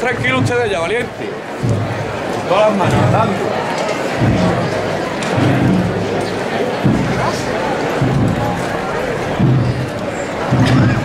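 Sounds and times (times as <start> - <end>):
crowd murmur: 0.0 - 11.0
scattered voices: 0.0 - 11.0.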